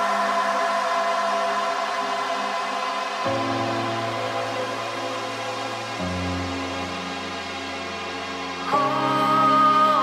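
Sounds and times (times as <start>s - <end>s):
hiss-like wash: 0.0s - 10.0s
sustained synth pad chord: 0.0s - 10.0s.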